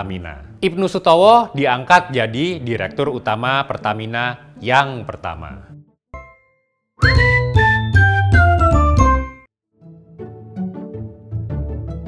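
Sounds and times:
chiming notes over heavy bass: 6.2s - 9.4s.

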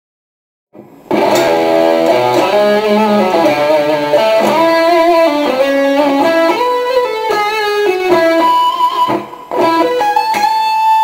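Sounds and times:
distorted electric guitar: 0.8s - 11.0s.

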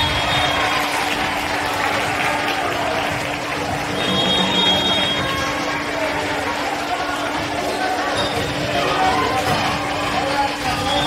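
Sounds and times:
voices in a gym: 0.0s - 11.0s.

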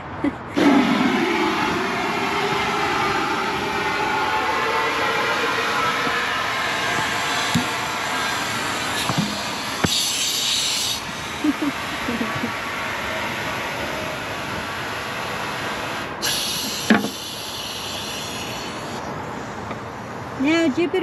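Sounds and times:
compressed air hissing into fender: 0.6s - 20.0s.

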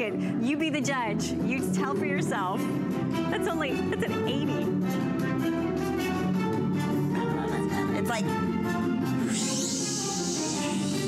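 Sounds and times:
bright hiss-like wash: 9.3s - 11.0s.

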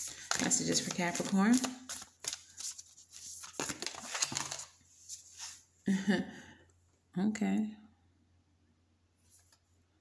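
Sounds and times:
cards being shuffled: 0.0s - 5.6s.

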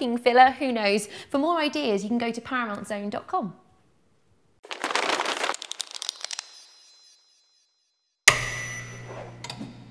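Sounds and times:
crackling rustling burst with clicks: 4.6s - 7.0s
loud hit with ringing tones: 8.3s - 9.1s.

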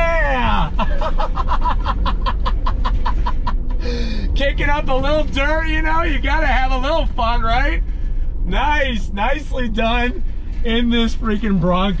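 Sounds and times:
low rumble of moving car cabin: 0.0s - 12.0s
man laughing hard: 0.4s - 4.1s.

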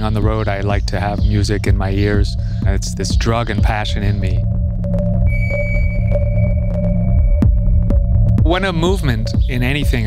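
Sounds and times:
low bass drone: 0.0s - 10.0s
high pure synth tone: 4.4s - 9.4s.

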